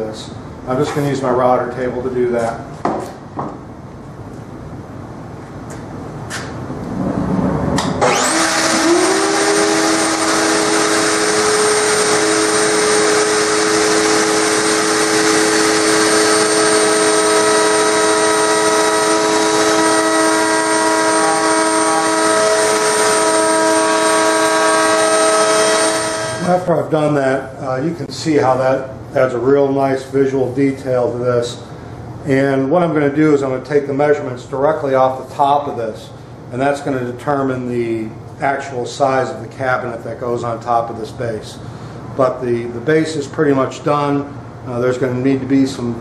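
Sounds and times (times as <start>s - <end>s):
router whining: 7.8s - 26.6s.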